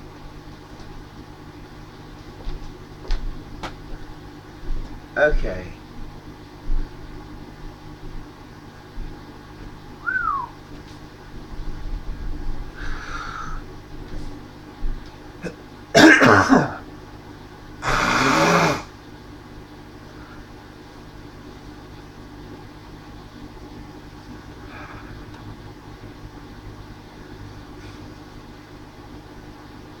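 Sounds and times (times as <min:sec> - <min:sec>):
man coughing: 0:15.4 - 0:16.9.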